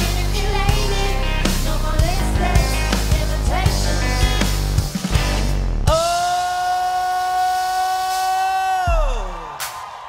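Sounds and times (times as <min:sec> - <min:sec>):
deep bass: 0:00.0 - 0:06.2
rock band held note: 0:00.8 - 0:07.4.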